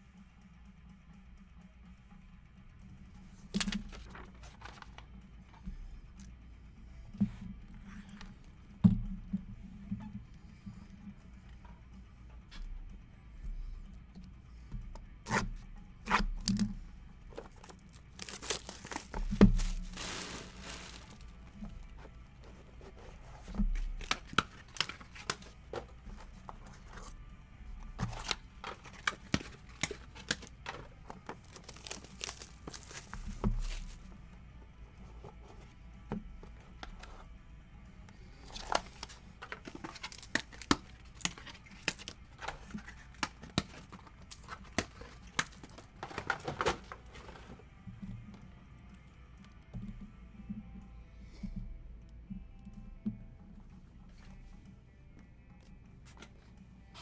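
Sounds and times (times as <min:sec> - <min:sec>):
plastic wrap tearing and crumpling: 0:18.1 - 0:21.3, 0:31.4 - 0:34.0.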